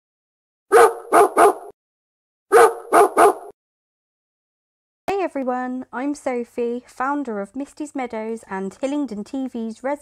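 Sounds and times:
dog barking: 0:00.7 - 0:01.7, 0:02.5 - 0:03.5.

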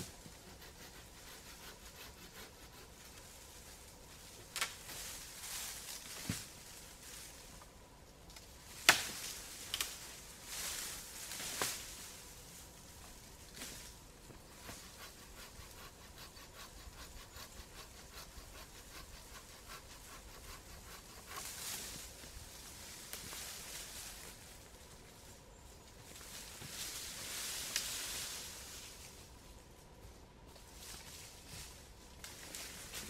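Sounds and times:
branches and leaves rustling: 0:00.0 - 0:33.0
hand saw cutting branch: 0:00.1 - 0:03.2, 0:14.4 - 0:22.0.

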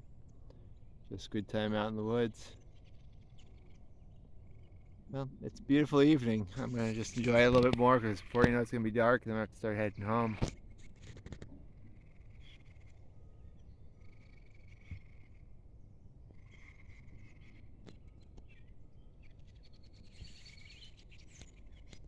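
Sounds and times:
birds chirping: 0:00.0 - 0:10.3, 0:11.7 - 0:22.0.

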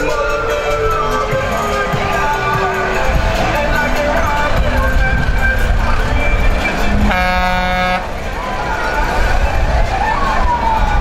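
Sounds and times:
truck engine rumble: 0:00.0 - 0:11.0
vehicle horn blast: 0:07.0 - 0:08.2.

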